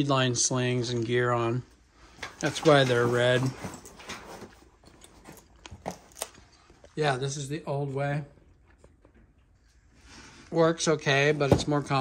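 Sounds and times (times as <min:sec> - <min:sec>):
handling clicks and rustles: 0:02.2 - 0:07.0.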